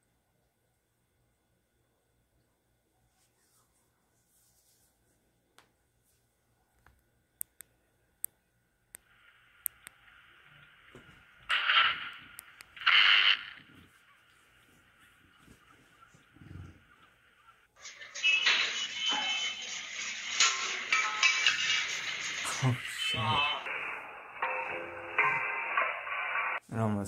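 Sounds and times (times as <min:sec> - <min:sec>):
power cables arcing: 0:09.0 - 0:13.9
steady hiss: 0:09.0 - 0:27.0
music: 0:17.8 - 0:26.6.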